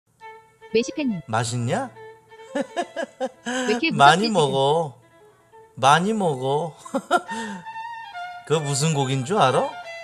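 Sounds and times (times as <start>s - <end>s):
background music with held notes: 0.1s - 10.0s
man speaking: 1.3s - 2.0s, 3.5s - 5.0s, 5.8s - 7.6s, 8.5s - 9.8s.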